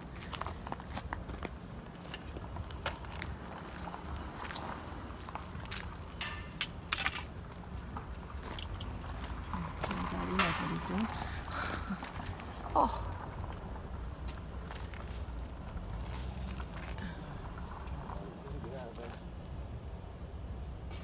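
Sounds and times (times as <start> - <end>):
movement on gravel: 0.0 - 19.3
steady low rumble: 0.0 - 21.0.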